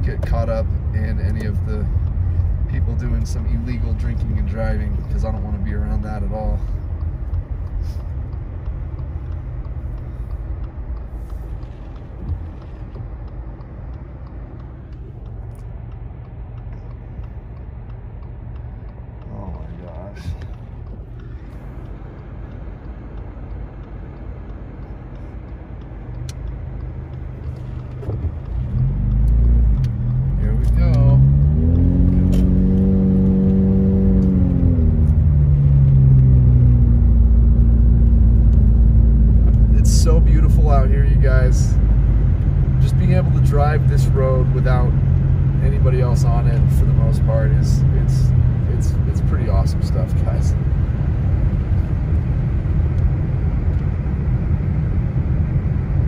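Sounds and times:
car engine accelerating: 0.0s - 56.0s
road rumble from inside car: 0.0s - 56.0s.

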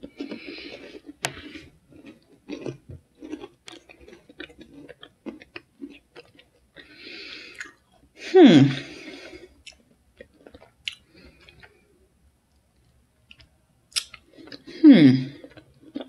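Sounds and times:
person chewing crunchy granola: 0.0s - 8.1s, 8.8s - 11.8s, 14.0s - 16.0s.

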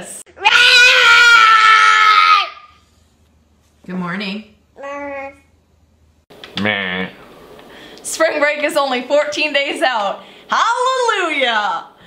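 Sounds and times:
toddler screaming: 0.4s - 2.8s.

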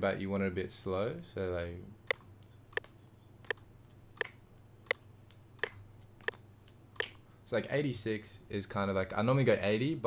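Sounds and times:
computer mouse clicks: 2.1s - 7.2s.

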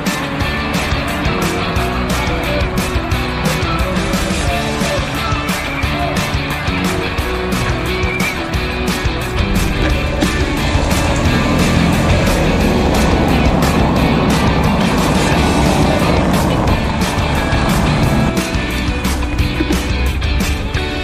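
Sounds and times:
bicycle rattling over cobblestones: 0.0s - 21.0s
rock music: 0.0s - 21.0s.

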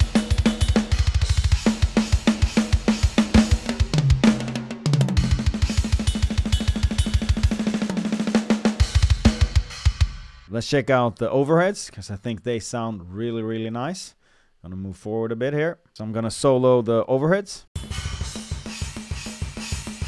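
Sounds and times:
snare backbeat: 0.0s - 10.4s
descending tom fill: 0.0s - 10.5s
cymbals: 5.2s - 8.1s, 17.8s - 20.0s.

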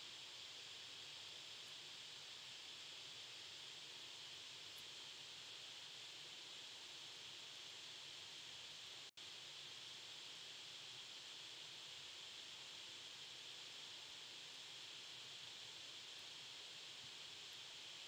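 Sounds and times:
microphone hiss: 0.0s - 18.0s.

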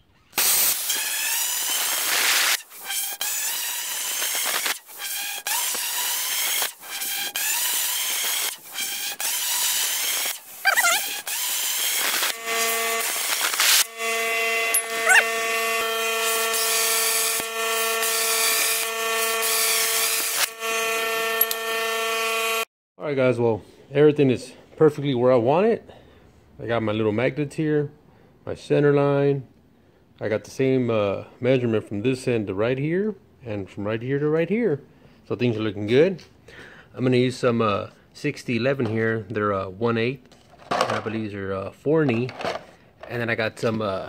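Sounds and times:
plasma cutter hissing: 0.4s - 8.7s, 9.6s - 13.9s
steady pitched whine: 12.3s - 19.5s.

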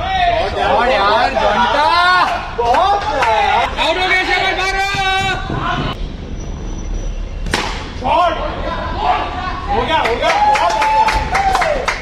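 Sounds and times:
cricket bat striking ball: 7.4s - 7.9s.

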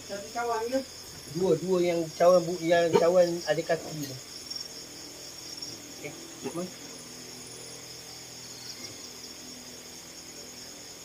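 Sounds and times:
crickets chirping: 0.0s - 11.0s.

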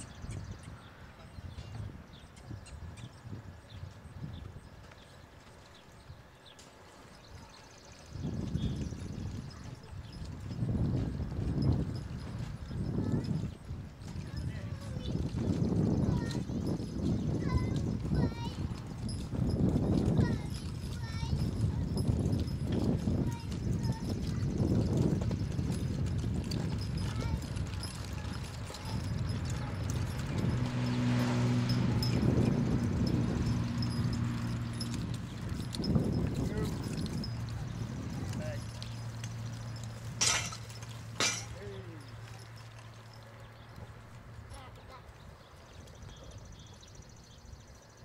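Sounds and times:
horse hoofbeats on gravel: 3.3s - 47.8s.

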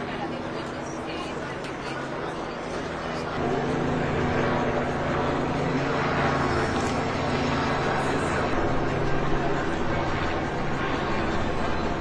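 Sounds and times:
low machine hum: 0.0s - 12.0s
outdoor crowd noise: 0.0s - 12.0s.

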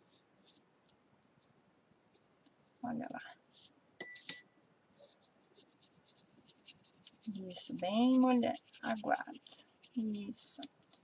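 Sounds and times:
paintbrush clinking glass cup: 4.0s - 4.6s
soft brush ticks: 5.0s - 11.0s.

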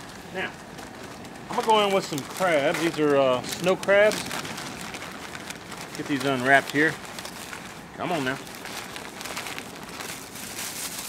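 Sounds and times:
paper crinkling: 0.0s - 11.0s.

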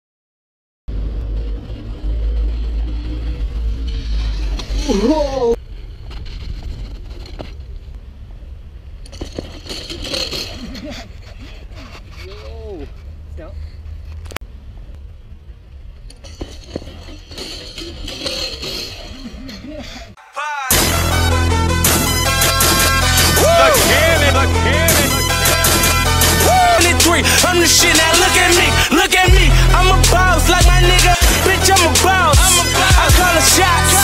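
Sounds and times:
tyres skidding on snow: 0.9s - 14.2s
wind rumble on microphone: 5.6s - 9.0s
music: 20.6s - 34.0s
people calling out: 23.2s - 25.6s, 26.2s - 29.6s.

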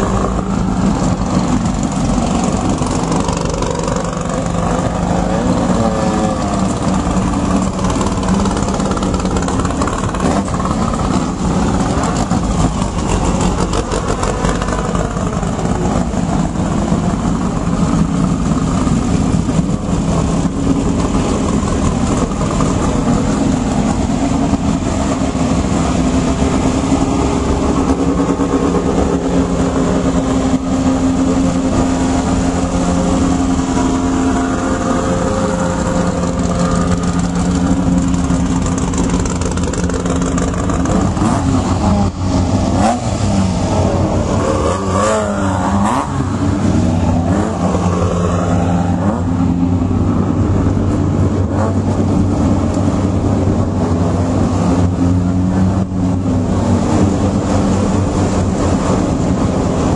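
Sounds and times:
buggy engines revving: 0.0s - 59.9s.

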